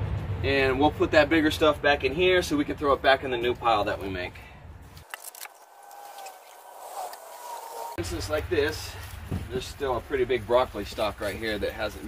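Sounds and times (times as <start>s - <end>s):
pitchfork scraping leaves on dirt: 4.9s - 8.0s
chicken calling: 5.5s - 8.0s.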